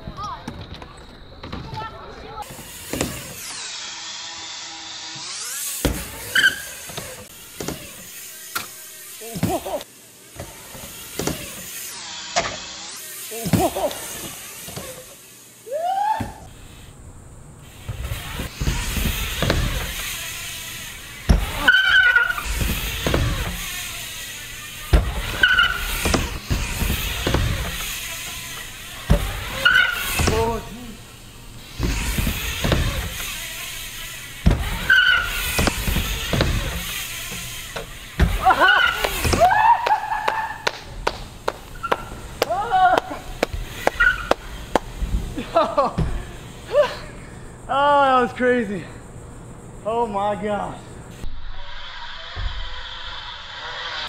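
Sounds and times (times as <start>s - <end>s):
bike tyres rolling on wooden ramp: 0.0s - 3.7s, 5.1s - 47.1s, 51.2s - 54.0s
tyre squeaks: 5.8s - 8.7s, 21.2s - 23.8s, 24.7s - 30.8s, 31.8s - 40.7s, 41.6s - 44.5s.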